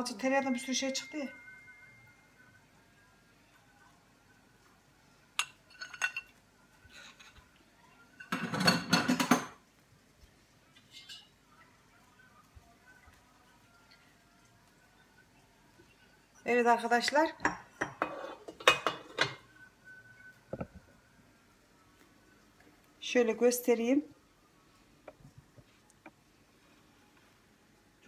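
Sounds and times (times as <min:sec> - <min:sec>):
kitchenware clattering: 0:05.4 - 0:07.4, 0:08.2 - 0:09.6, 0:10.8 - 0:11.3, 0:17.3 - 0:19.5
kitchenware clinking: 0:05.4 - 0:07.4, 0:08.2 - 0:09.6, 0:10.8 - 0:11.4, 0:17.4 - 0:19.5.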